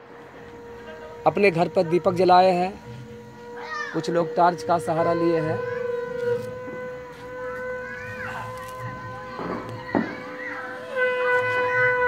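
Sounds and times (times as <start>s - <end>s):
conch shell blown: 0.0s - 12.0s.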